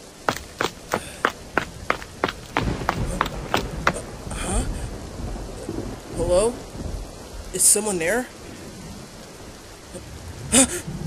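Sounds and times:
rain: 0.0 - 11.0
sharp knocks: 0.3 - 4.0
low thunder rumble: 1.2 - 7.6.

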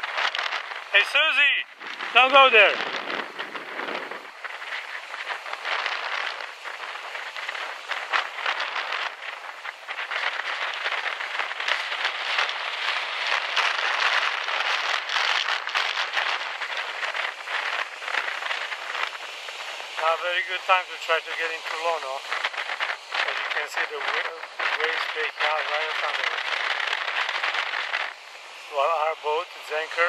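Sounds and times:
surf breaking: 0.0 - 30.0.

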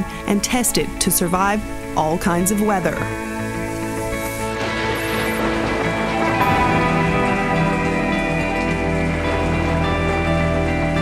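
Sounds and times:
soft background music: 0.0 - 11.0
rain: 3.2 - 11.0.

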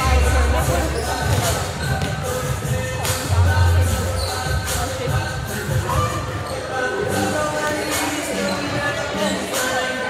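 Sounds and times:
music: 0.0 - 10.0
voices in a large gym: 0.0 - 10.0.

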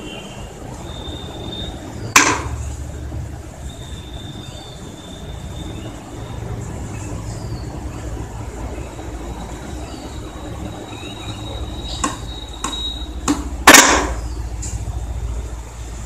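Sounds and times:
thin high whine: 8.7 - 14.8.

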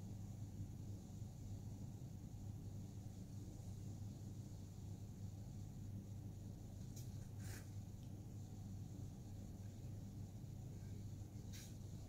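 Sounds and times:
low background hum: 0.0 - 12.0.

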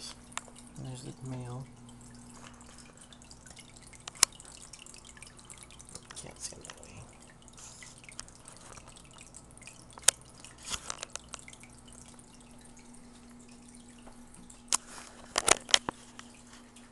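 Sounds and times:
low steady filter hum: 0.0 - 16.9
water trickling and dripping: 0.0 - 16.9.

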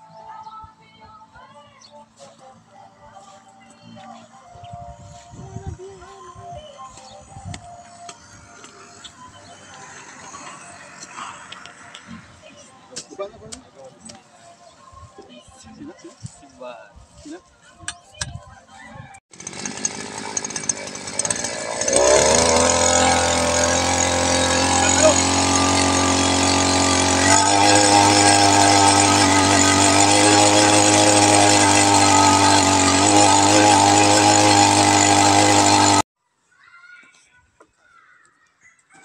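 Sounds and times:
earth auger engine revving: 19.3 - 36.1.

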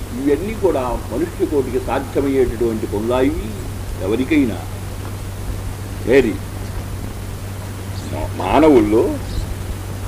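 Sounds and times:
man speaking: 0.0 - 4.8, 6.0 - 6.4, 8.0 - 9.5
low constant hum: 0.0 - 10.0
steady hiss: 0.0 - 10.0.

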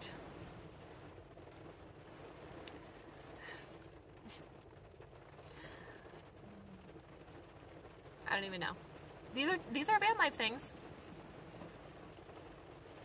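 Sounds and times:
faint breaths: 5.3 - 7.2.

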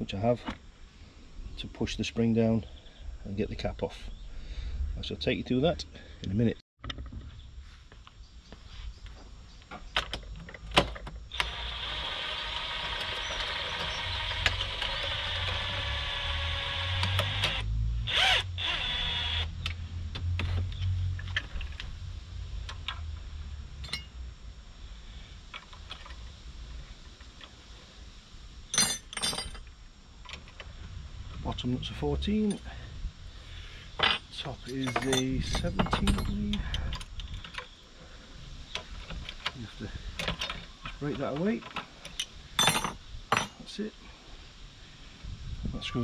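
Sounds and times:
metal knocks and clinks: 23.8 - 24.1, 28.7 - 29.7, 34.0 - 37.0, 41.7 - 43.6
spanner clinking on metal: 23.8 - 24.1, 28.7 - 29.6, 34.0 - 37.0, 42.1 - 43.6.

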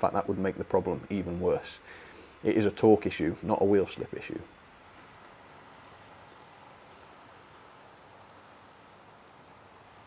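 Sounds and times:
model train motor running: 0.0 - 10.0.

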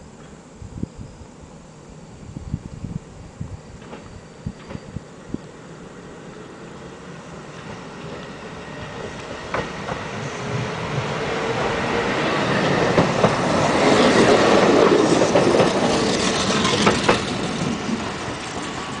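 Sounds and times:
electric train passing: 0.0 - 19.0
train wheels clacking over rail joints: 9.2 - 10.0, 12.7 - 19.0.

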